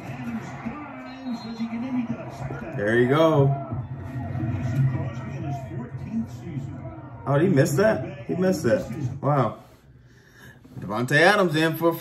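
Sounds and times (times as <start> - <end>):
man commentating on tv: 0.0 - 9.8, 10.8 - 12.0.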